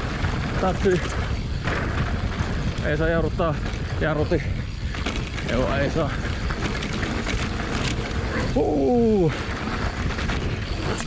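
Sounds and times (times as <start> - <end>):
bike rattling: 0.0 - 11.0
tyres rolling over dirt: 0.0 - 11.0
wind on microphone: 0.0 - 11.0.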